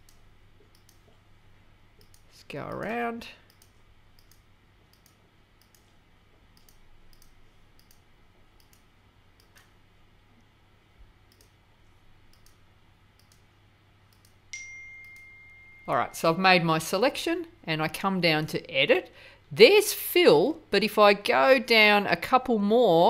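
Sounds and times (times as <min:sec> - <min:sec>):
computer mouse clicking: 0:00.0 - 0:01.2, 0:02.0 - 0:09.7, 0:11.3 - 0:11.6, 0:12.3 - 0:12.6, 0:13.2 - 0:13.5, 0:14.1 - 0:14.4
short steady high tone: 0:14.5 - 0:16.2.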